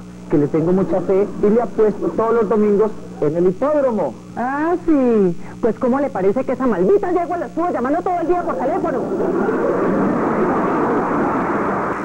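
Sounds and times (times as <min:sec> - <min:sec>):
audience laughing: 0:00.4 - 0:03.0, 0:08.2 - 0:12.0
audience applauding: 0:08.4 - 0:12.0.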